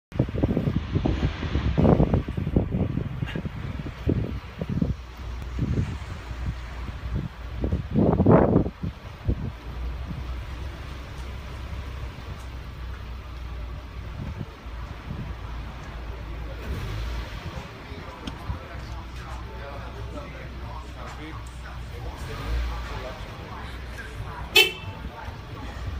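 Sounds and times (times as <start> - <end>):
car engine rumbling at low speed: 0.1 - 25.9.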